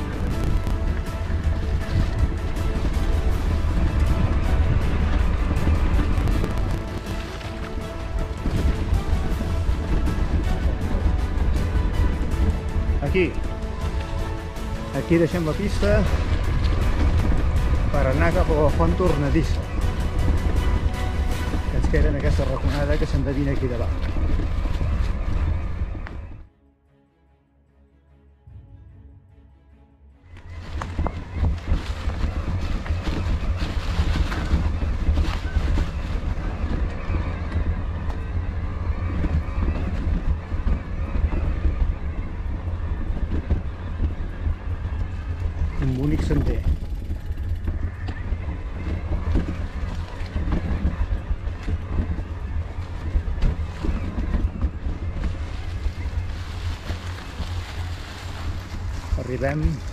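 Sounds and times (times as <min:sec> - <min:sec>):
tyres rolling over leaves: 0:00.0 - 0:26.4, 0:30.2 - 0:59.9
wind buffeting microphone: 0:00.0 - 0:26.5, 0:30.2 - 0:59.9
faint music: 0:00.0 - 0:59.9.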